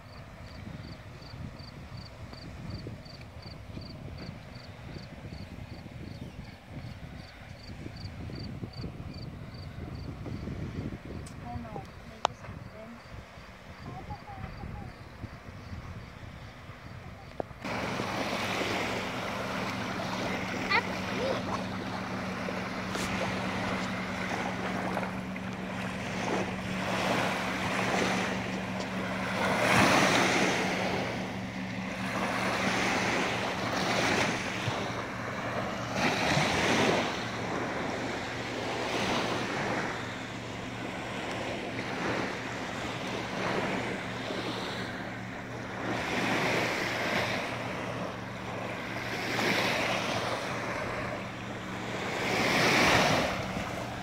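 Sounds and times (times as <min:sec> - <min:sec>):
small waves breaking on sand: 0:00.0 - 0:54.0
wind on microphone: 0:00.0 - 0:54.0.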